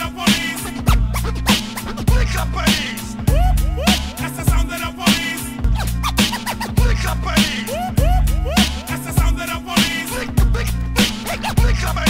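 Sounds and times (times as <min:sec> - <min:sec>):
hip hop beat with kick drums: 0:00.0 - 0:12.0
turntable scratching: 0:00.0 - 0:12.0.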